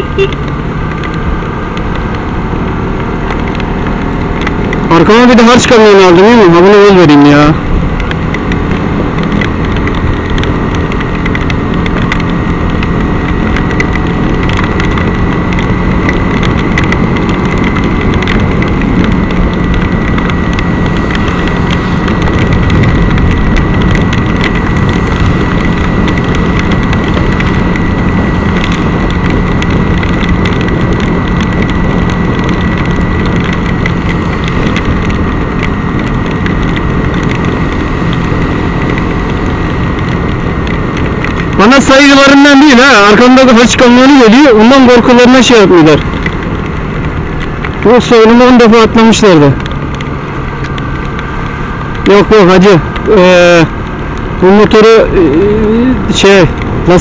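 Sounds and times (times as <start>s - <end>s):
motorcycle engine cruising: 0.0s - 57.0s
wind rushing: 14.1s - 43.2s.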